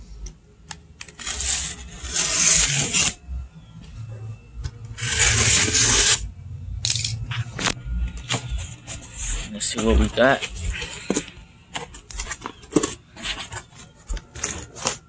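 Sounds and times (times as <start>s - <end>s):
box cutter slicing cardboard: 1.2s - 3.2s, 5.0s - 6.2s.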